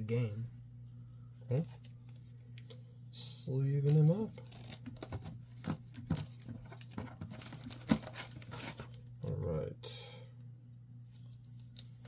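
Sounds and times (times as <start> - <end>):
plastic card sleeve crinkling: 3.8 - 9.4, 11.1 - 12.0.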